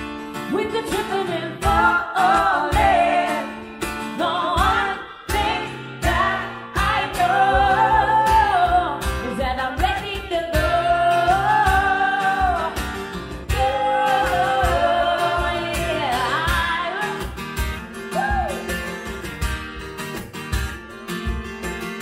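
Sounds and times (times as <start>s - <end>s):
acoustic guitar: 0.0s - 22.0s
cajon beat: 0.0s - 22.0s
women singing long notes: 0.6s - 3.6s, 4.2s - 12.9s, 13.5s - 17.3s.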